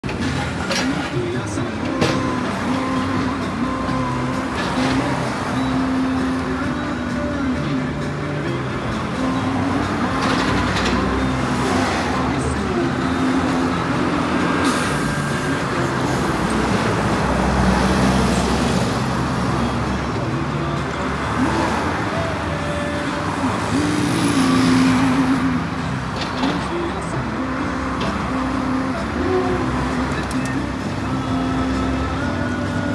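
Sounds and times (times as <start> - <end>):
road traffic passing: 0.0 - 32.9
steady engine drone: 0.0 - 32.9.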